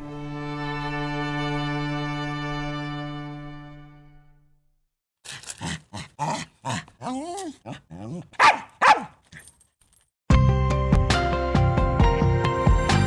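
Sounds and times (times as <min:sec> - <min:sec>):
small dog barking: 0:06.2 - 0:09.2
dog whining: 0:06.2 - 0:09.5.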